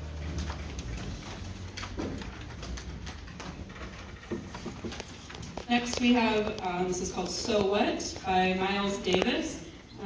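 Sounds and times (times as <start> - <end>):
low hall hum: 0.0 - 10.0.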